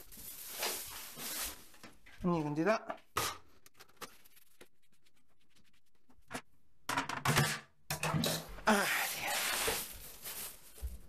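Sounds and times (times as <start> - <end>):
plastic bag rustling: 0.0 - 2.3, 8.7 - 11.0.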